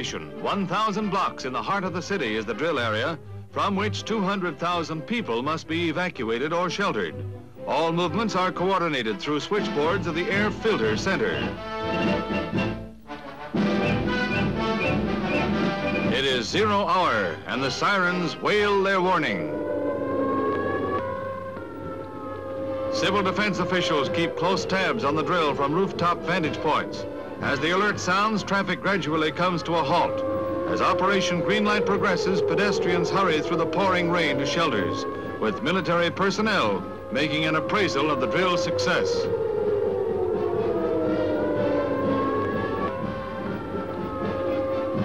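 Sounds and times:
air raid siren wailing: 0.0s - 45.0s.

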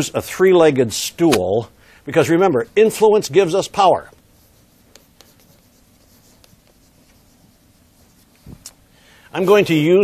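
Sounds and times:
chalk scratching on chalkboard: 4.2s - 8.4s
chalk ticking on board: 4.3s - 8.3s.

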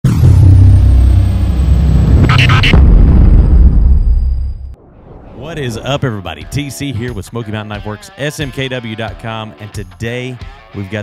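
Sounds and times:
deep steady rumble: 0.0s - 6.0s
high falling sweep: 0.0s - 6.4s.

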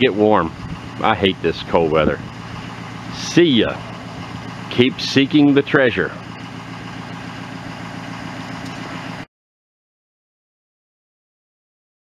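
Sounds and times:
car engine idling: 0.0s - 9.3s.

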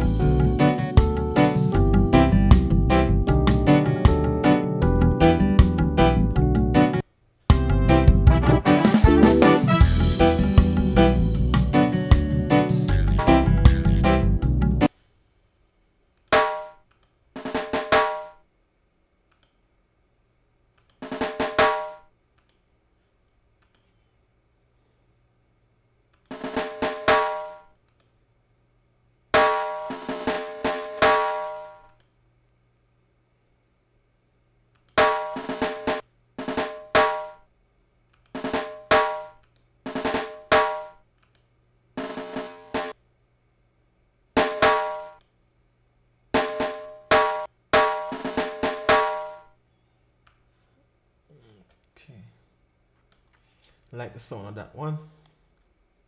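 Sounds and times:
timpani rolls and strikes: 7.5s - 11.1s.

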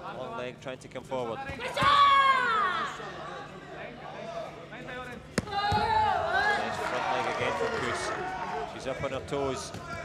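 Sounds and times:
crowd shouting and cheering: 5.5s - 10.0s.

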